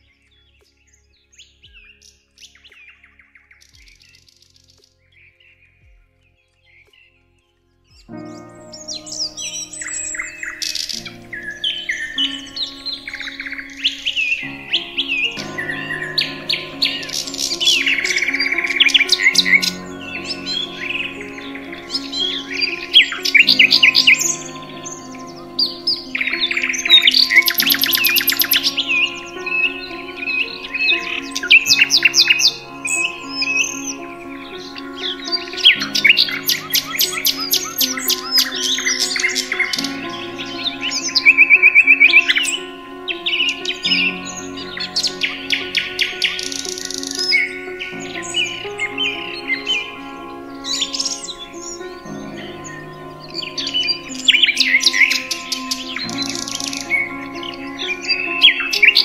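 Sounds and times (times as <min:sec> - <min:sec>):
soft music of held chords: 0:00.0 - 0:59.0
songbirds chirping and trilling: 0:00.0 - 0:59.0.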